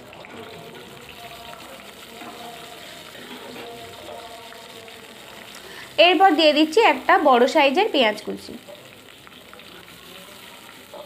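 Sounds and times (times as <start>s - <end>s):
chillies sizzling in oil: 0.0s - 11.0s.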